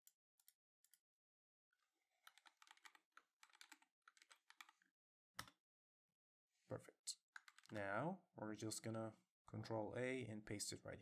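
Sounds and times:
typing on computer keyboard: 2.3 - 4.8, 7.4 - 7.8.

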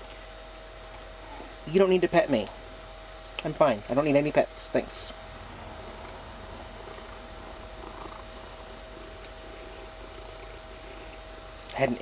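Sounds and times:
faint electrical whine: 0.0 - 12.0
cat purring: 4.8 - 11.7.

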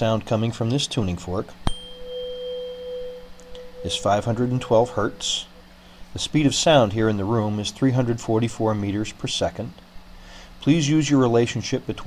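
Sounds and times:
tuning fork ringing: 1.6 - 6.3.

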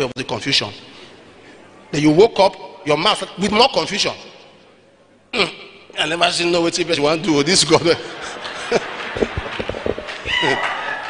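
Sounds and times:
congregation laughing: 7.5 - 11.0.

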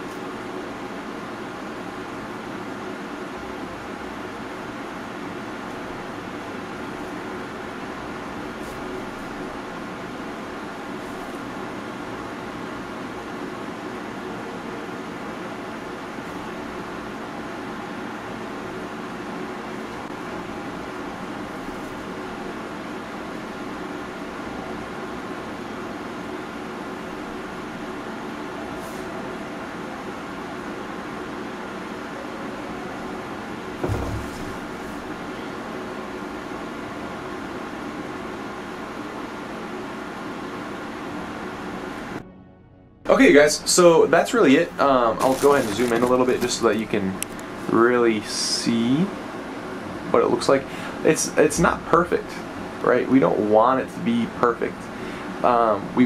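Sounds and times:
background hiss and hum: 0.0 - 56.0
soft thump: 33.8 - 35.1.

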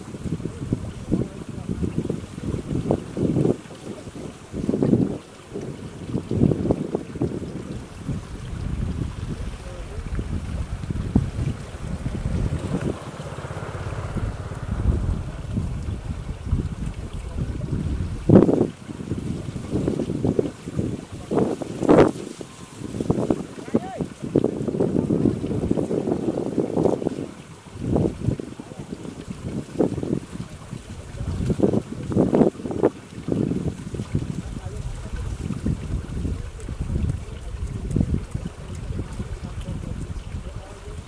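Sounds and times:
wind buffeting microphone: 0.0 - 41.0.

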